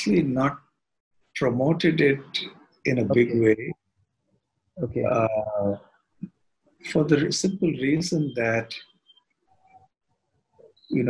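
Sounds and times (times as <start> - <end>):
man speaking: 0.0 - 0.6, 1.4 - 3.7, 4.8 - 5.8, 6.9 - 8.8.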